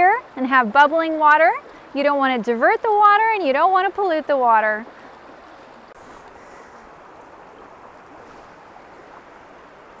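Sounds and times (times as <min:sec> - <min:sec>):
creek water rushing over rocks: 0:00.0 - 0:10.0.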